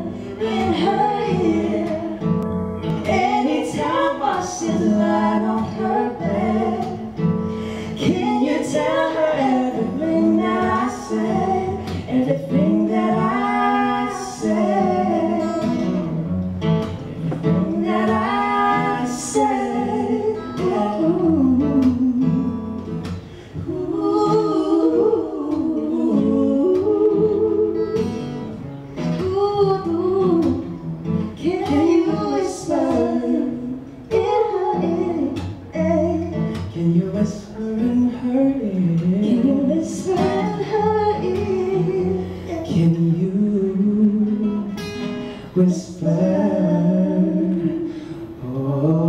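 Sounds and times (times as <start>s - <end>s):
woman and man singing: 0.0s - 16.3s, 17.3s - 49.0s
strummed acoustic guitar: 0.0s - 49.0s.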